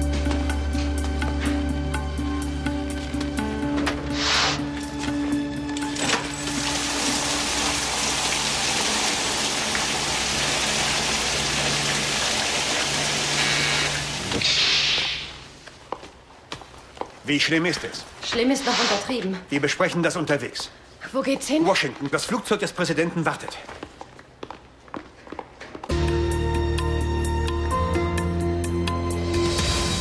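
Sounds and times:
shower spray hissing: 6.4s - 15.5s.

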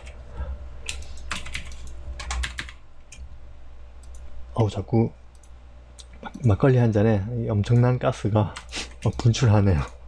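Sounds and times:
steady low hum: 0.0s - 10.0s
keyboard and mouse clicks: 4.0s - 4.3s.

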